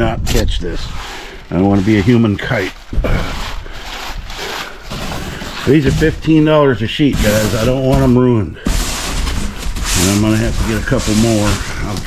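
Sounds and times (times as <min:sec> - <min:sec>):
foam board scraping across floor: 0:00.8 - 0:12.0.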